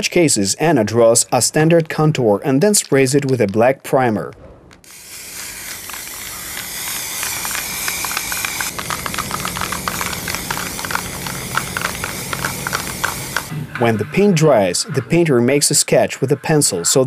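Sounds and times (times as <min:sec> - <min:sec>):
aerosol spray can hissing: 0:04.9 - 0:13.5.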